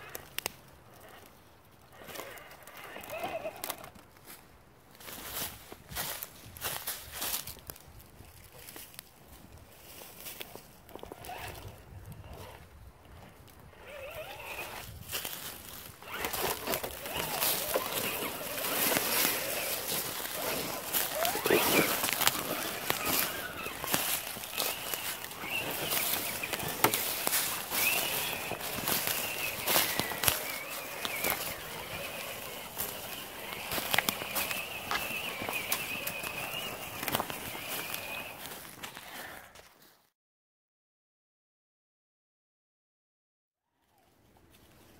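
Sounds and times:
crunching leaves: 0.0 - 40.0
electric motor and gear whine: 1.9 - 4.3, 9.8 - 38.9
footsteps: 14.2 - 40.0.

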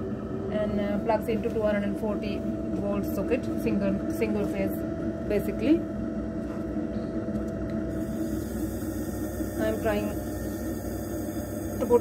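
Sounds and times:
electric potter's wheel humming: 0.0 - 12.0.

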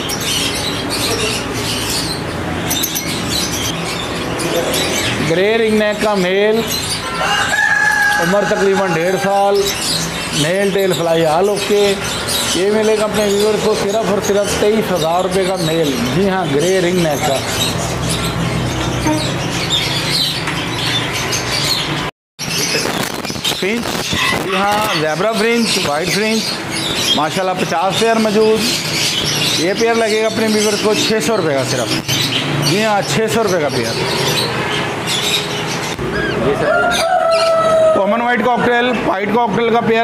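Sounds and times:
birds chirping and squawking: 0.0 - 40.0.

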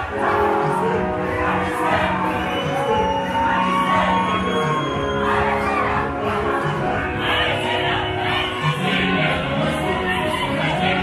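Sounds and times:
gospel choir singing over music: 0.0 - 11.0.

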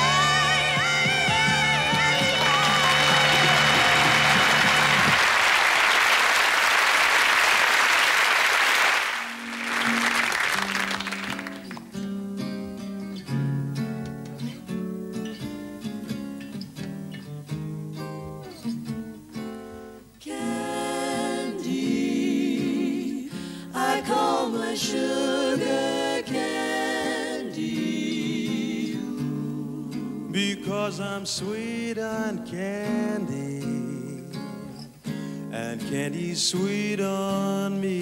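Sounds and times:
close-harmony vocal group singing: 0.0 - 4.9, 20.2 - 33.9
band and held sung note: 0.0 - 5.2
audience applause: 1.8 - 12.0
jazz guitar plucked chords: 9.4 - 20.7.

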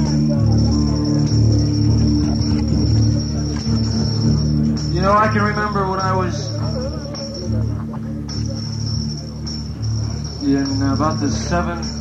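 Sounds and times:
low amplifier drone: 0.0 - 12.0
man's amplified voice: 4.8 - 7.2, 10.4 - 12.0.

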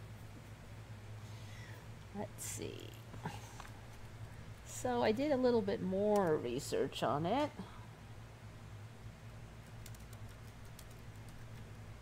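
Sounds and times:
steady low hum: 0.0 - 12.0
keyboard typing clicks: 9.6 - 11.7.

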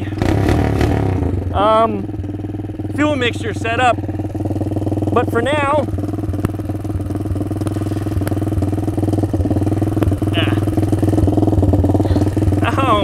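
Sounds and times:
minibike engine idling: 0.0 - 13.0.

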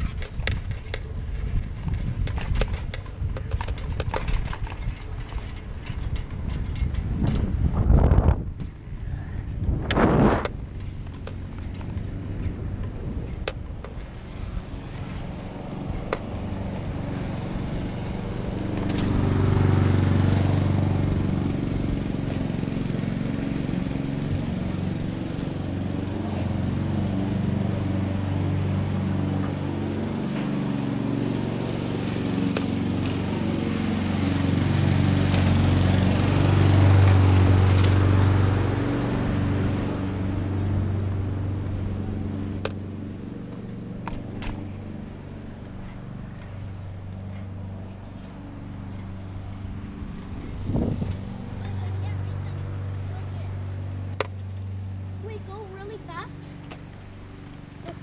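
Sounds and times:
wind on microphone: 0.0 - 11.2, 49.8 - 52.1
small engine humming: 0.0 - 58.0.

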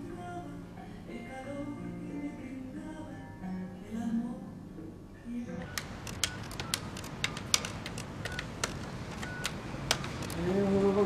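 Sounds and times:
telephone keypad button clicks: 5.6 - 10.4.

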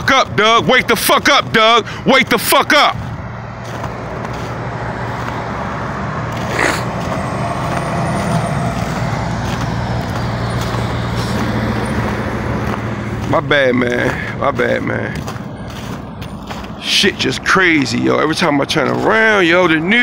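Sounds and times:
heavy truck engine rumbling: 0.0 - 20.0
road traffic noise: 0.0 - 20.0.

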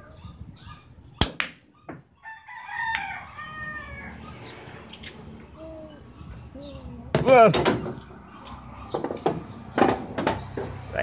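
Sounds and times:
rooster crowing: 2.2 - 4.4.

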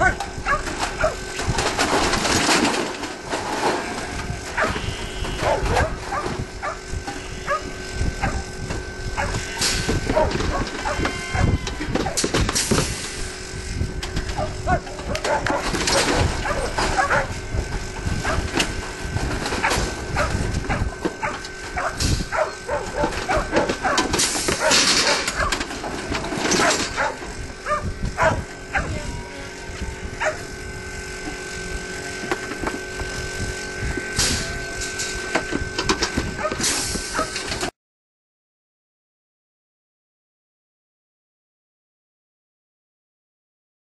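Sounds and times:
metal gates clattering: 14.1 - 17.3, 22.4 - 27.4.

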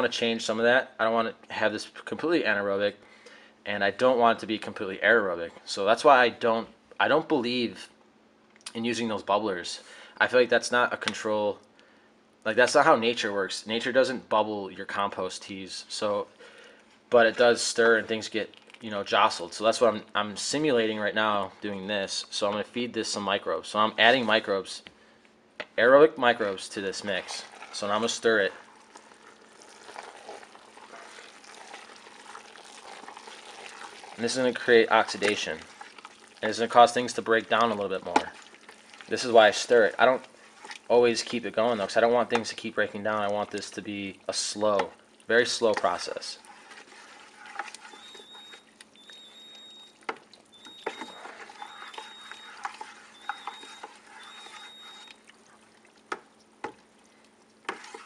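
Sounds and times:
wet mash being stirred: 17.1 - 20.0, 26.3 - 58.0
thick liquid sloshing: 26.8 - 58.0.

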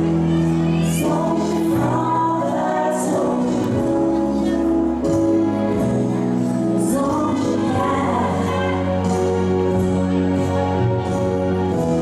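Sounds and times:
slow waltz music: 0.0 - 12.0.

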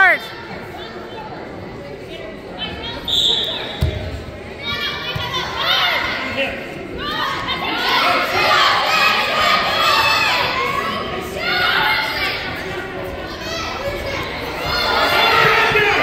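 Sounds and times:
referee's whistle: 3.0 - 3.9
spectators shouting and cheering: 13.4 - 16.0.

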